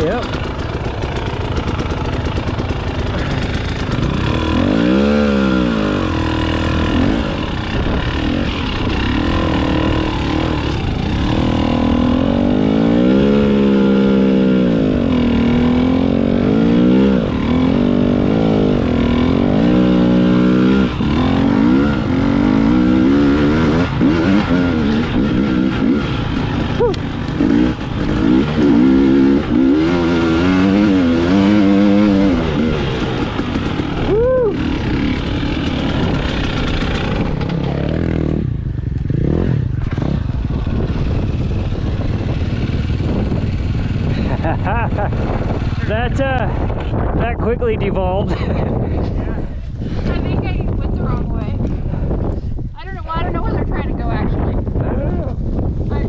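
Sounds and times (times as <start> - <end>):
two-stroke motorcycle engine revving: 0.0 - 51.8.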